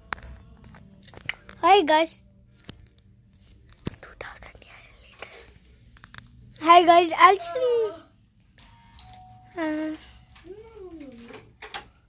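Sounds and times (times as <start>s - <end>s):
child whispering: 4.0s - 5.4s.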